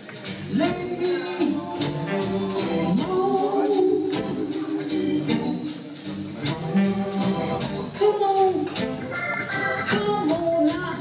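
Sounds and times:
live blues band playing: 0:00.0 - 0:11.0.

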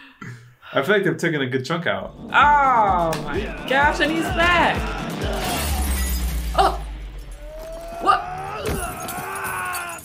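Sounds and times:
window glass shattering: 0:05.2 - 0:10.0.

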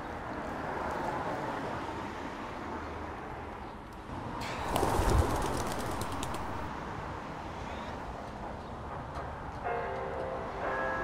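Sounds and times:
steady outdoor hiss: 0:04.4 - 0:08.4.

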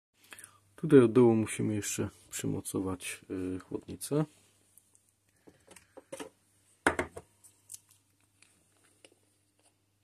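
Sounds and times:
faint steady hum: 0:00.2 - 0:10.0.

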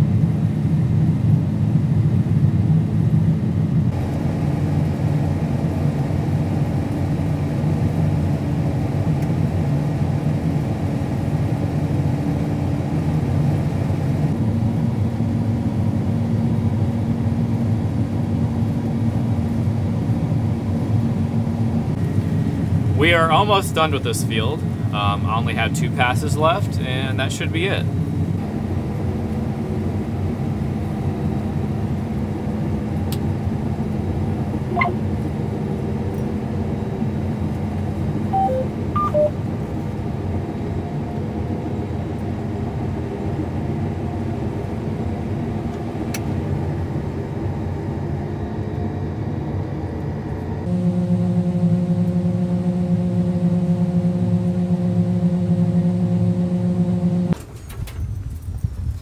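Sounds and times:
combine harvester running: 0:03.9 - 0:40.7, 0:41.9 - 0:57.7
short electronic beeps: 0:34.7 - 0:35.0, 0:38.4 - 0:39.4.

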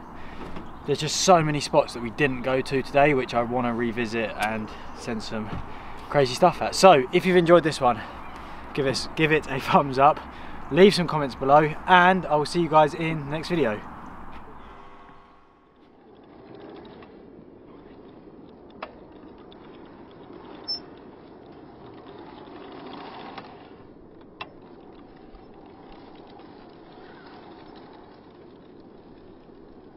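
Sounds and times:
bike rolling on grass: 0:00.0 - 0:14.8, 0:15.8 - 0:29.9.

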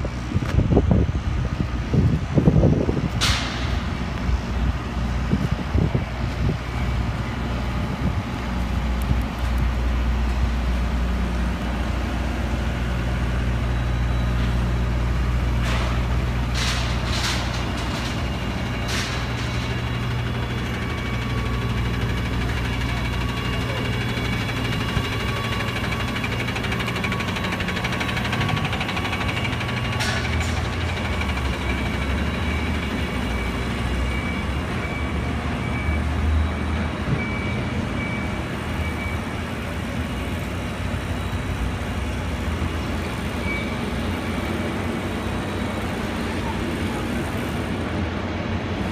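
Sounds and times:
truck engine rumbling: 0:00.0 - 0:48.9
sharp knocks and clanks: 0:03.2 - 0:03.9, 0:15.6 - 0:20.1, 0:29.8 - 0:31.9.

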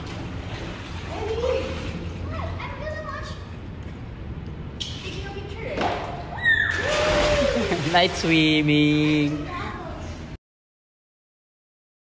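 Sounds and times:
pool water splashing: 0:00.0 - 0:10.4
child shouting: 0:06.3 - 0:07.6
children's voices: 0:09.4 - 0:10.3.

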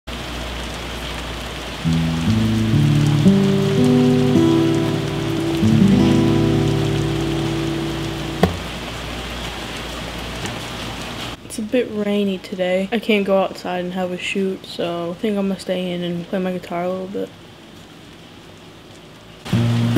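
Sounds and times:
steady rain: 0:00.1 - 0:19.9
sustained musical notes: 0:01.9 - 0:09.0
sharp knock: 0:08.4 - 0:08.7.

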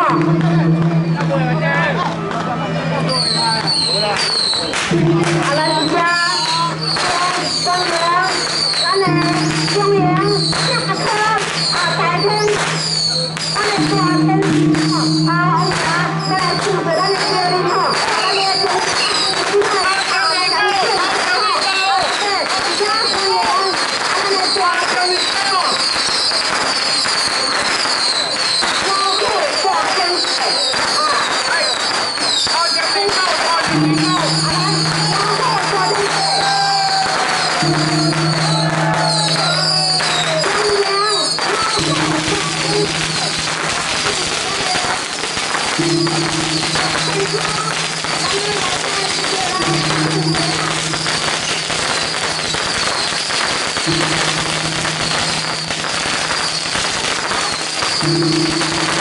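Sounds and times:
low held tone: 0:00.0 - 0:08.1, 0:09.0 - 0:18.0, 0:33.7 - 0:37.0, 0:37.6 - 0:40.4, 0:41.8 - 0:44.1, 0:45.8 - 0:52.4, 0:53.8 - 0:56.8, 0:58.0 - 0:59.0
firecrackers crackling: 0:00.0 - 0:59.0.

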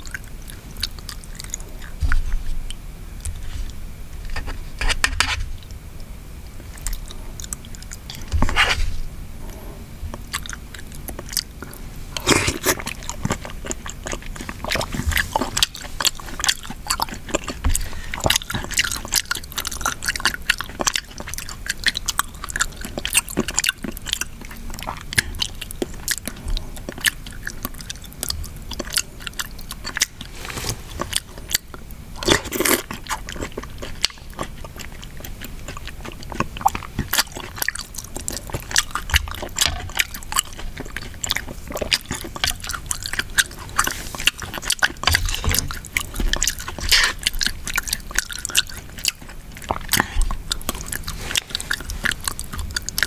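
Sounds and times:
wet chewing and mouth sounds: 0:00.0 - 0:53.0.

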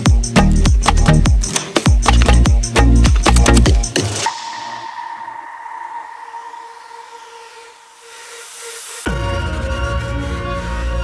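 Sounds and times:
electronic dance beat: 0:00.0 - 0:09.1
held synth tone: 0:04.3 - 0:09.3
rising noise swell: 0:04.3 - 0:10.0.

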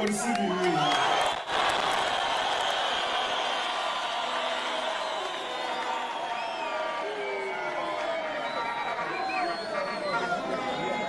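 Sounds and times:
hand clapping: 0:00.0 - 0:03.0
crowd cheering and shouting: 0:00.0 - 0:11.0.

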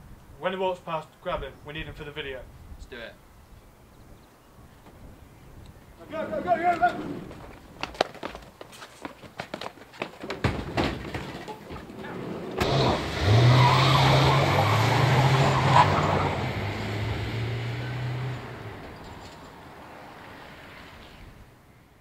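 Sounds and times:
tyre noise: 0:06.0 - 0:21.4
scuffling knocks: 0:06.7 - 0:12.6
van engine pulling away: 0:11.9 - 0:21.5.

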